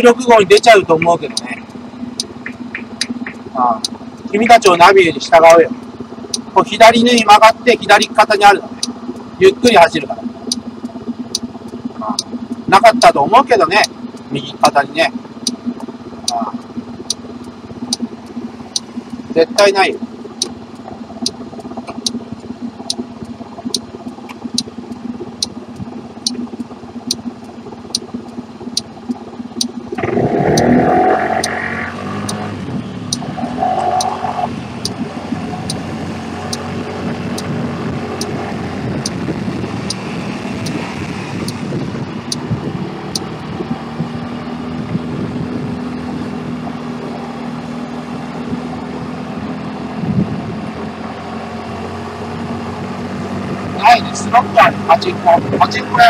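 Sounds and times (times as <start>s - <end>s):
turn signal ticking: 0.0s - 56.0s
small motorbike engine: 15.0s - 56.0s
wind noise: 34.4s - 46.0s, 50.0s - 50.6s.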